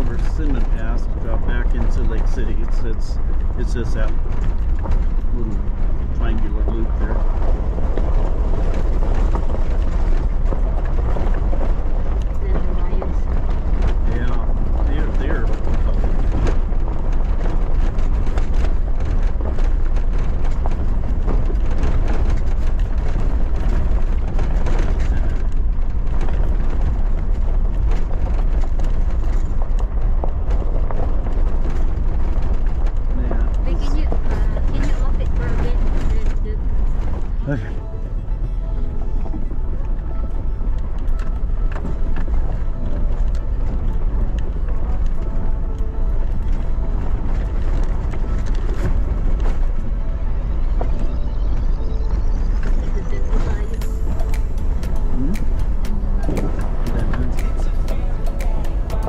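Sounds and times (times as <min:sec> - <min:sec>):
heavy low rumble: 0:00.0 - 0:59.0
tyres on gravel: 0:00.0 - 0:59.0
vehicle engine drone: 0:00.0 - 0:59.0.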